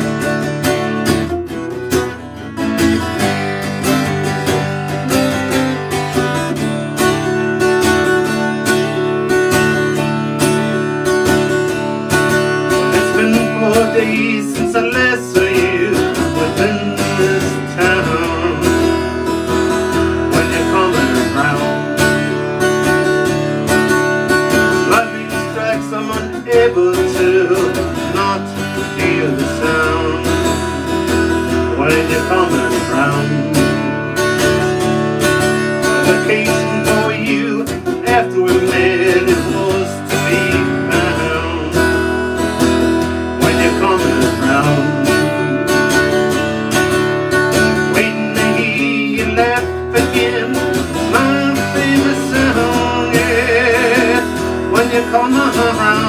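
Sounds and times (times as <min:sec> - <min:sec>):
harmonica melody: 0:00.0 - 0:56.0
strummed acoustic guitar: 0:00.0 - 0:56.0.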